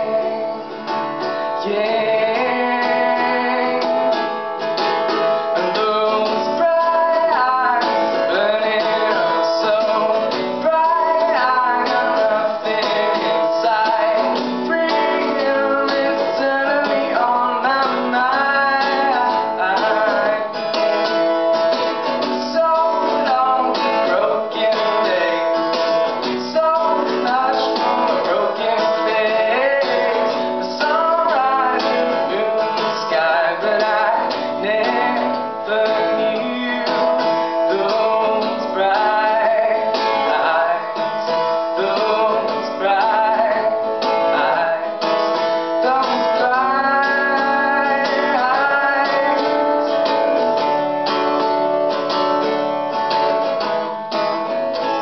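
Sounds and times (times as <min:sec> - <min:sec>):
man singing: 0:00.0 - 0:51.7, 0:52.4 - 0:55.0
acoustic guitar strumming: 0:00.0 - 0:55.0.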